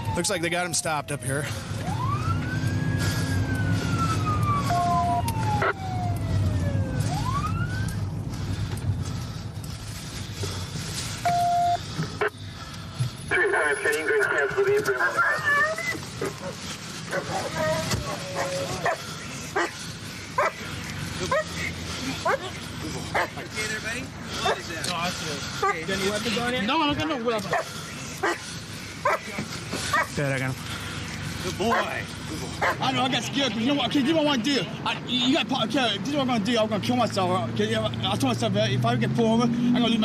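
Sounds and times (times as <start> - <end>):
police siren wailing: 0.0 - 8.2, 17.2 - 19.2
car engine: 0.9 - 34.1, 35.7 - 40.0.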